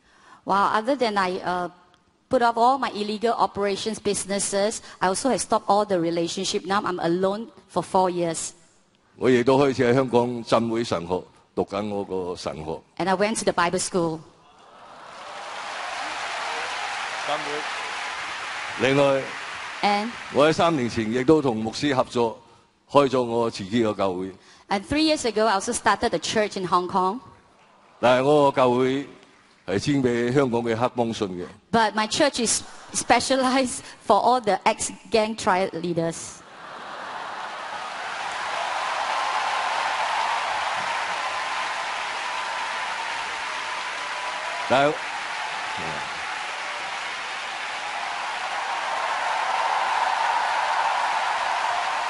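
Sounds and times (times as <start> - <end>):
audience applauding: 14.6 - 21.9, 36.6 - 52.0.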